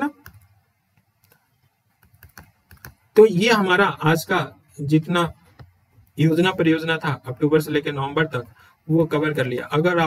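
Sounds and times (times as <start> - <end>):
computer keys clicking: 0.0 - 3.1.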